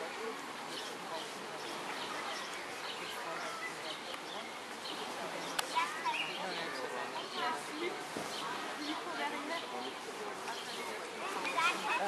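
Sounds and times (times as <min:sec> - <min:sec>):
indistinct chatter: 0:00.0 - 0:12.0
outdoor background hiss: 0:00.0 - 0:12.0.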